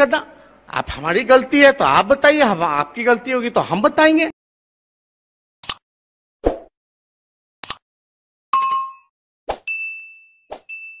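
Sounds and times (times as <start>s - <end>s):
click: 7.6s - 7.8s
bell-like ding: 9.7s - 11.0s.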